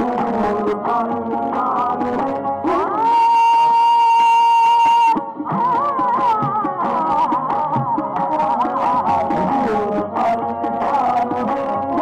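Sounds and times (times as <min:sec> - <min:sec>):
person singing a long high note: 0:00.0 - 0:12.0.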